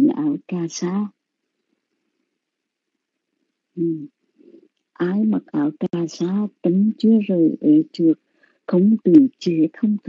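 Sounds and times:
person humming: 3.8s - 4.1s.

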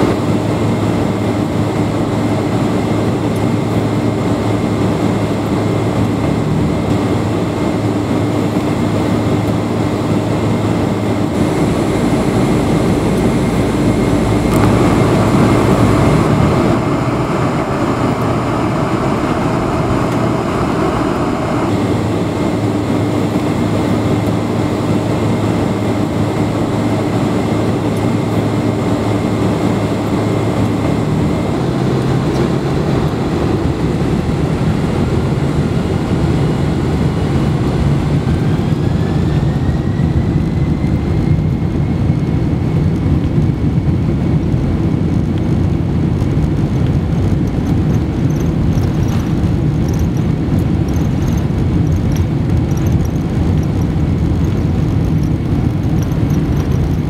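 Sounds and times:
faint high whine: 0.0s - 42.7s
airplane engine rumble: 0.0s - 57.0s
whine rising in pitch: 0.0s - 57.0s.

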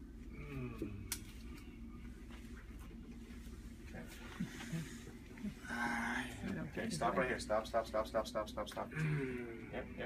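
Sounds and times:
man groaning in pain: 8.9s - 9.6s.

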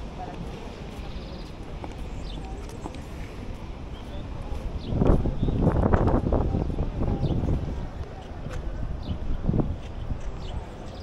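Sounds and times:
footsteps on pavement: 0.0s - 6.3s, 9.6s - 11.0s
low rumble of traffic: 0.0s - 11.0s
wind: 0.0s - 11.0s.

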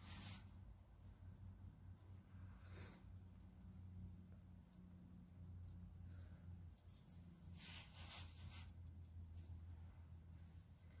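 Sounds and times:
faint light scratching: 0.0s - 1.3s, 1.9s - 3.8s, 6.0s - 11.0s
low steady hum: 0.0s - 11.0s.

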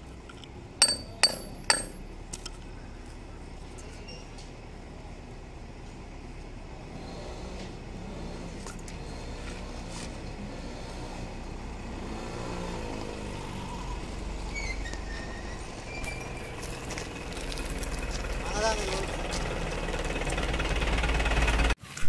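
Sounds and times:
low engine rumble: 0.0s - 21.8s.

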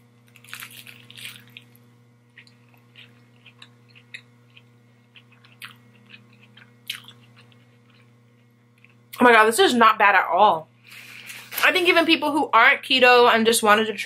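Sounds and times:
crunchy chewing: 0.2s - 9.2s.

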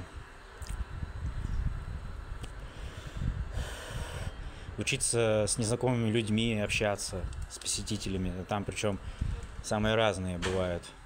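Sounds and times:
man exhaling noisily: 2.6s - 4.8s.

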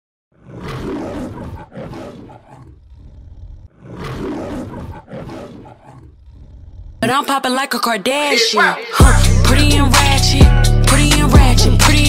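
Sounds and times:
lion roaring: 0.3s - 7.0s.

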